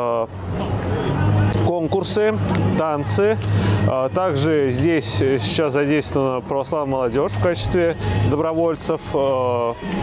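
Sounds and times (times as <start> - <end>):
man's voice: 0.0 - 10.0.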